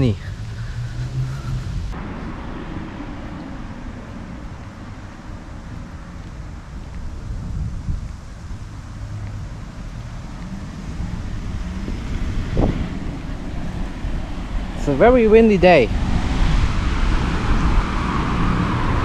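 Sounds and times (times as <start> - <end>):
wind buffeting microphone: 2.7 - 19.0.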